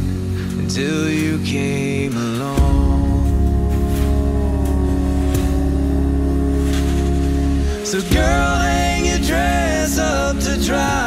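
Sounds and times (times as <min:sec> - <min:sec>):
a cappella group singing: 0:00.6 - 0:11.0
deep bass note: 0:02.6 - 0:11.0.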